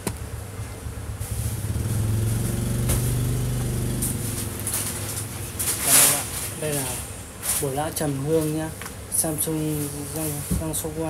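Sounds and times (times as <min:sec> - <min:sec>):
motor engine humming: 0:00.0 - 0:07.4.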